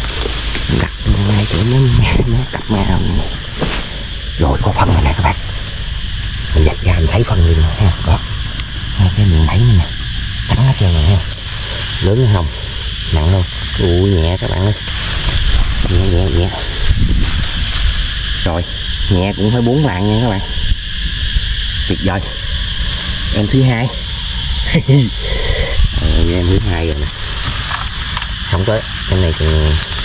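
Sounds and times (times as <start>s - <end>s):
high-pitched hiss: 0.0s - 30.0s
wind rumble on microphone: 0.0s - 30.0s
man talking: 0.6s - 3.4s, 4.4s - 5.5s, 6.5s - 8.3s, 9.0s - 14.9s, 15.7s - 16.9s, 18.4s - 20.6s, 21.9s - 22.4s, 23.3s - 24.0s, 24.7s - 27.2s, 28.5s - 30.0s
wind buffeting microphone: 14.9s - 19.2s, 24.1s - 28.2s.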